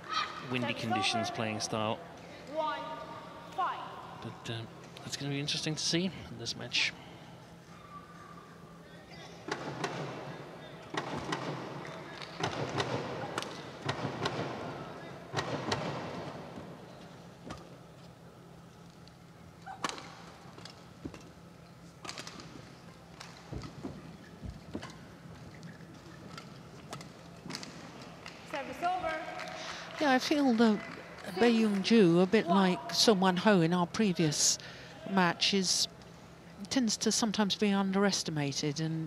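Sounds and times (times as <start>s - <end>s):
arena background noise: 0.0s - 39.0s.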